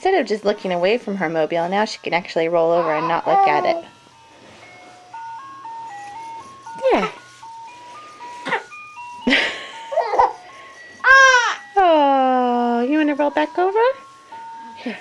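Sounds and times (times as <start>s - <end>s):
baby squealing: 2.6s - 3.9s, 11.0s - 11.6s
electronic lullaby tune: 2.9s - 15.0s.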